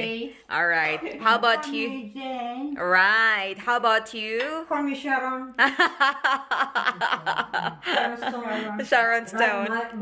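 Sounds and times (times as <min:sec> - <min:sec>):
lively talk: 0:00.0 - 0:10.0
women laughing: 0:05.6 - 0:08.9.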